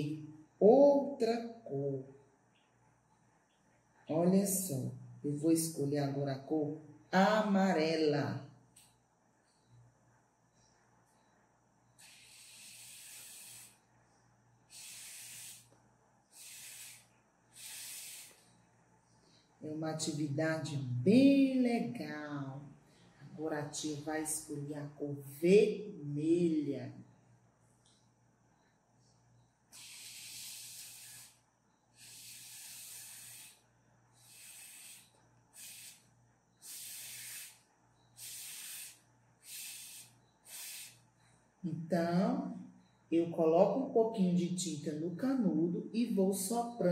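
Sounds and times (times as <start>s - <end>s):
breath blown through a straw: 12.0s - 13.9s, 14.7s - 18.6s, 29.7s - 31.4s, 32.0s - 41.1s.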